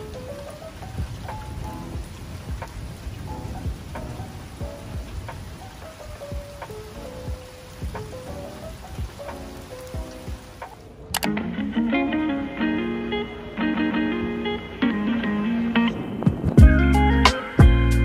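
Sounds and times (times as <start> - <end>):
rain drops: 0.0 - 11.3, 12.4 - 18.0
soft background music: 0.0 - 18.0
steady rain hiss: 0.0 - 18.0.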